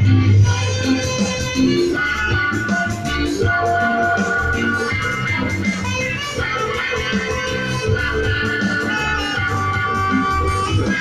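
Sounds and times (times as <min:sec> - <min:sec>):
bass line: 0:00.0 - 0:11.0
drums: 0:00.0 - 0:11.0
reggae guitar: 0:00.0 - 0:11.0.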